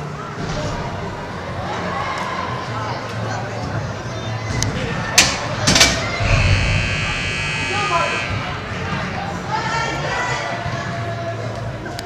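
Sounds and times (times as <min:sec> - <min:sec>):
hubbub of voices in hall: 0:00.0 - 0:12.0.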